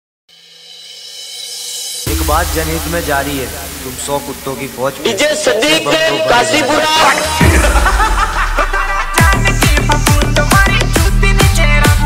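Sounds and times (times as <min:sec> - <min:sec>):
held synth chord: 0:01.9 - 0:08.8.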